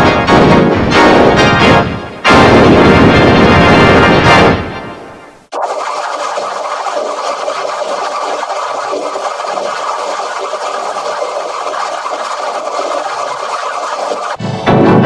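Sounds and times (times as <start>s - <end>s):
harsh distorted static noise: 0.0s - 15.0s.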